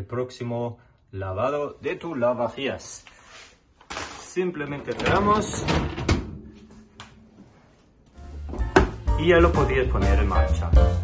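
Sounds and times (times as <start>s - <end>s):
dishwasher door closing knock: 8.6s - 9.0s.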